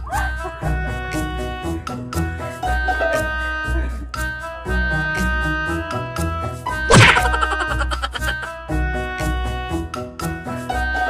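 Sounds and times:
keyboard music: 0.0s - 10.0s
cartoon whack sound effect: 6.9s - 7.8s.

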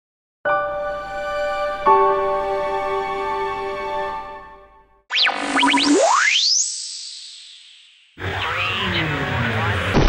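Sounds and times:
cartoon whistling pitch swoops: 5.1s - 8.1s.

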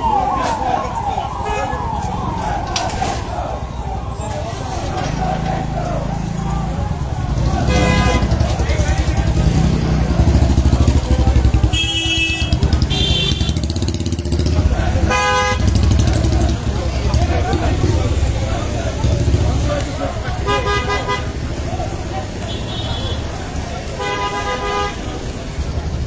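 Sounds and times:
indistinct crowd voices: 0.0s - 26.0s.

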